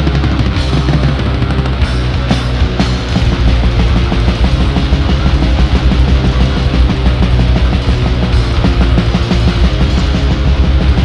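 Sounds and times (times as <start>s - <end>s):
death metal band playing: 0.0s - 11.0s.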